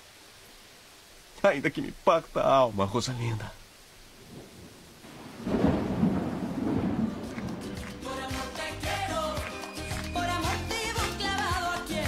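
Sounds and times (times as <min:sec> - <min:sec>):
rolling thunder rumble: 0:04.1 - 0:07.8.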